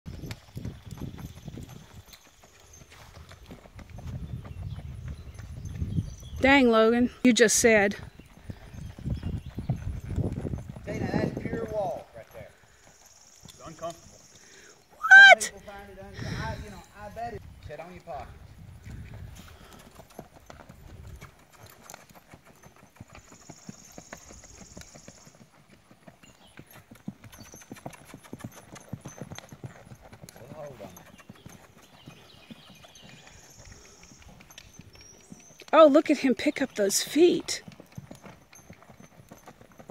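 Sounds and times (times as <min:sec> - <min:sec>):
hoofbeats on packed dirt: 0:00.0 - 0:39.9.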